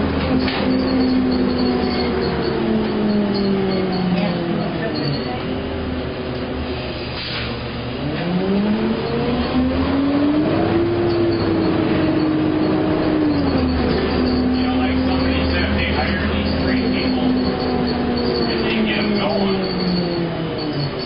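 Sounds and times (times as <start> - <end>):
bus engine rumble and whine: 0.0 - 21.0.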